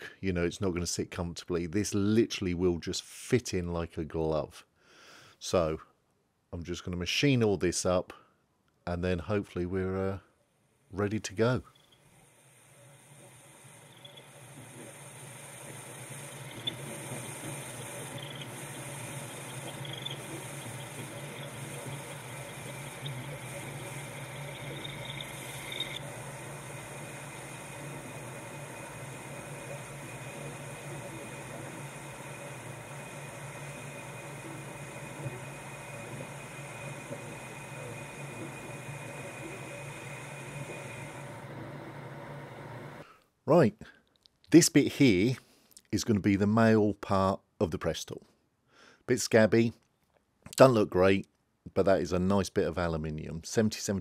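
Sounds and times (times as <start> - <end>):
thin high whine: 10.9 - 43.0
cutting tool hissing: 12.1 - 43.0
lathe motor hum: 13.1 - 43.0
faint ticks: 13.2 - 26.1.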